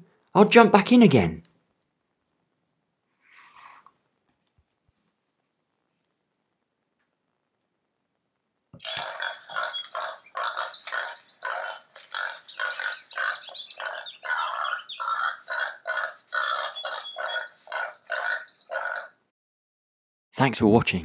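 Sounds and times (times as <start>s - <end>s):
tinny electronic tune: 8.8s - 17.7s.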